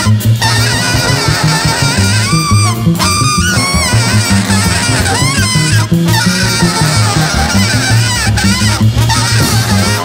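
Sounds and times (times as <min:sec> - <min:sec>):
double bass walking low notes: 0:00.0 - 0:10.0
jazz big band playing: 0:00.0 - 0:10.0
saxophone honking and bending pitch: 0:00.0 - 0:10.0.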